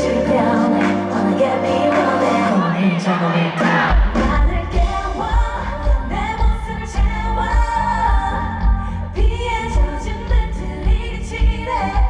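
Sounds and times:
amplified pop backing track: 0.0 - 12.0
woman singing into microphone: 0.0 - 12.0
heavy kick drum beat: 3.9 - 12.0.

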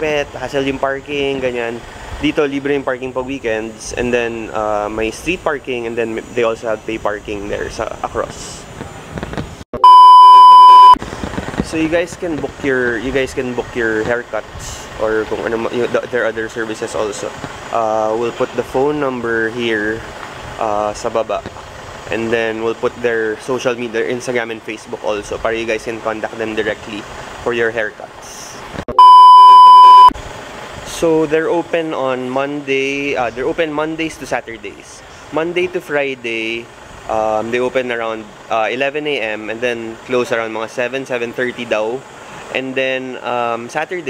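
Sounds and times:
loud electronic beep: 9.8 - 11.0, 28.9 - 30.1.

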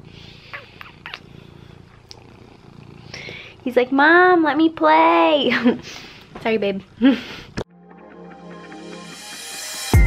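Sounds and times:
cat purring: 0.0 - 7.6.

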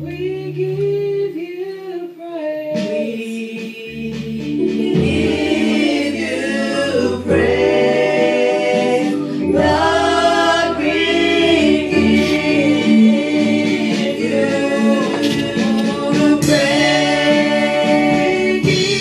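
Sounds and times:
group singing praise song: 2.8 - 19.0
held chords: 3.9 - 19.0.

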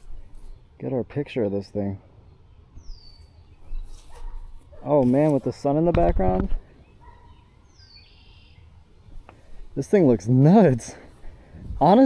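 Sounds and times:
distant dog bark: 4.1 - 5.0, 7.0 - 7.6.

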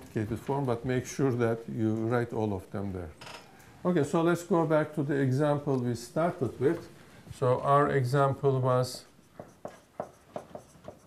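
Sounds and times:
marker pen writing on whiteboard: 8.9 - 11.0.

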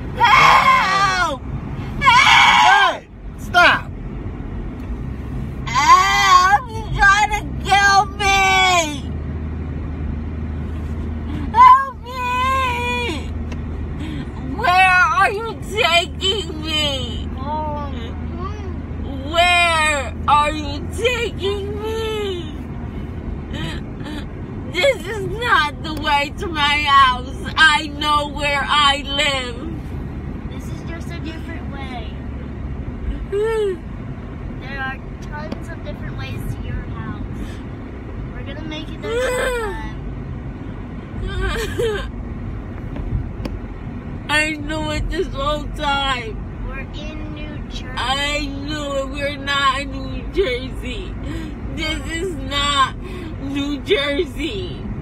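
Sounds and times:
car cabin drone: 0.0 - 55.0.

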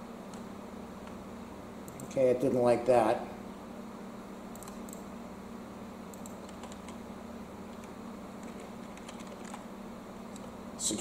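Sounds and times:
keyboard typing: 4.5 - 5.1, 6.1 - 7.0, 7.7 - 9.7.

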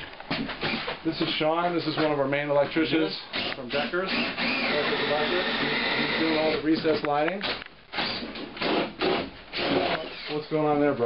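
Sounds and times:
hand saw cutting drywall: 8.0 - 10.3.

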